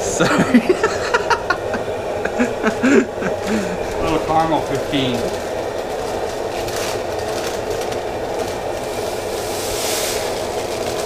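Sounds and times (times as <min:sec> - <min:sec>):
grain pouring into plastic bucket: 0:03.9 - 0:11.0.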